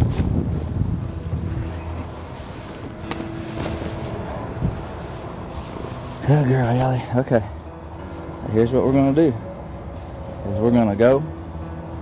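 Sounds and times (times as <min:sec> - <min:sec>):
wind buffeting microphone: 0:00.0 - 0:06.1
saddle rustling and knocks: 0:00.0 - 0:10.7.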